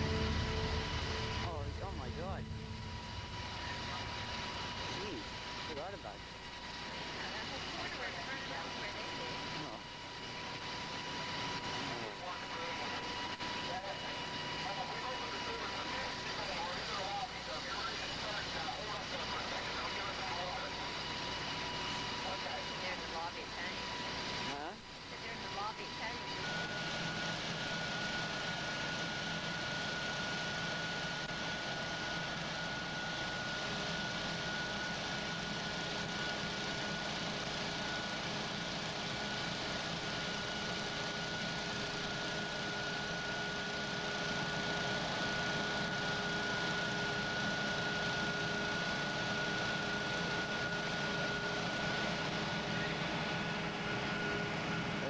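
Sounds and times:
low steady tone: 0:00.0 - 0:04.9
fire engine drone: 0:00.0 - 0:55.0
steady whine: 0:00.0 - 0:55.0.

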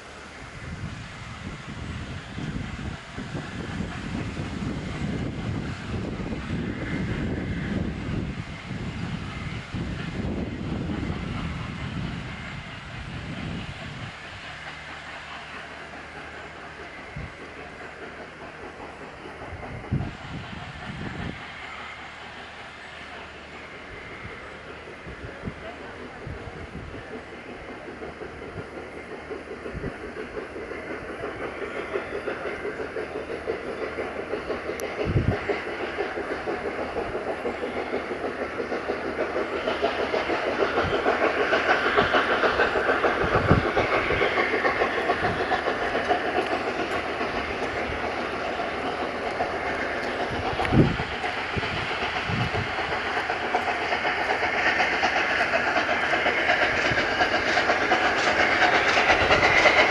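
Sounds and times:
steam locomotive exhaust beats: 0:00.0 - 0:59.9.

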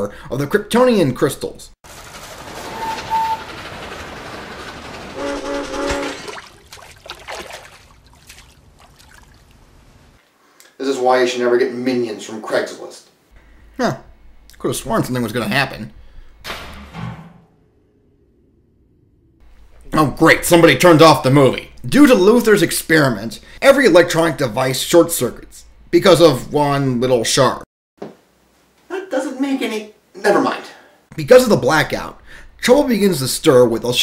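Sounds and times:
model train running: 0:01.9 - 0:06.3
short horn blasts: 0:05.2 - 0:06.3.

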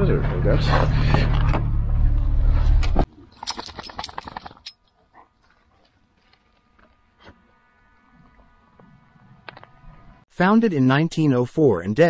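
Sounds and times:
light clinks and clicks: 0:03.3 - 0:05.0.

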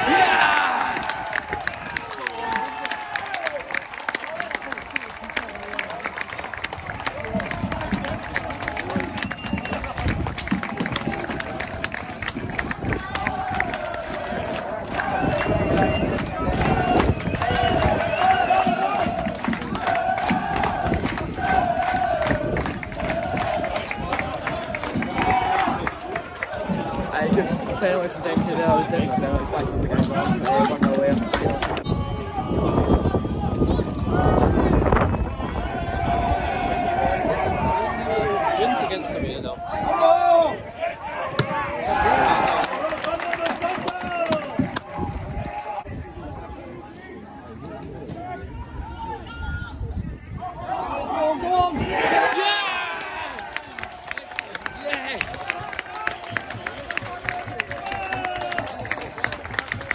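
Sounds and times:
football crowd noise: 0:00.0 - 0:59.9
crowd chanting: 0:13.0 - 0:29.2.

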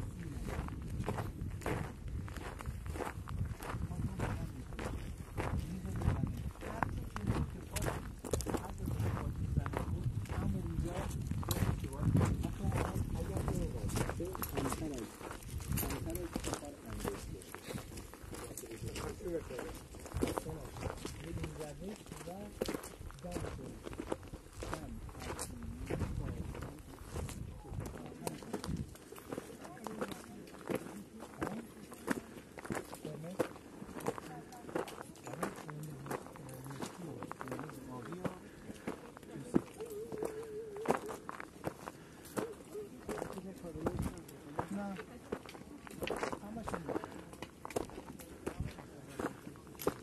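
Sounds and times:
people talking: 0:00.0 - 0:02.4, 0:03.6 - 0:41.5, 0:42.1 - 0:50.0
footsteps on gravel: 0:00.0 - 0:50.0.

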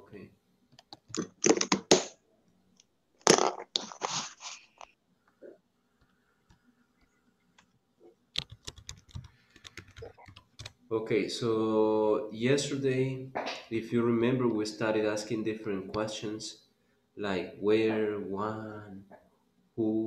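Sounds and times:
computer keyboard typing: 0:00.8 - 0:02.1, 0:08.4 - 0:10.8.

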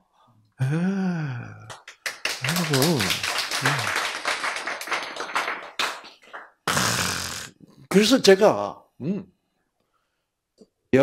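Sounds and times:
applause: 0:01.6 - 0:07.2.

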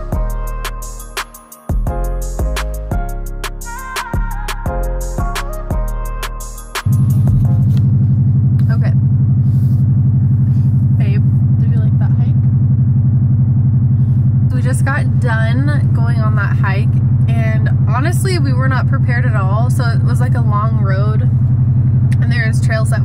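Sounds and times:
car rumble inside cabin: 0:01.8 - 0:23.0
people talking: 0:08.6 - 0:09.0, 0:11.0 - 0:12.5, 0:14.5 - 0:21.3, 0:22.1 - 0:23.0.

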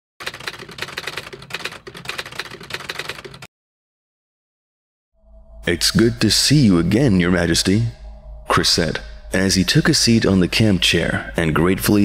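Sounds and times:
rapid typewriter keystrokes: 0:00.2 - 0:03.5.

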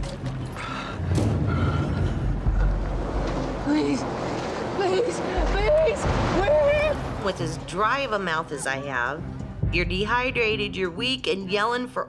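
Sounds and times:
vehicle engine rumbling: 0:00.0 - 0:08.2.

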